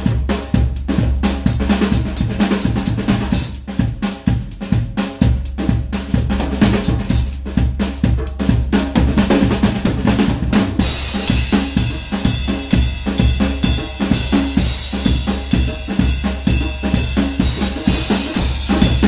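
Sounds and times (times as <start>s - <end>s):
drum kit played with sticks: 0.0s - 19.0s
cymbals ringing: 11.0s - 19.0s.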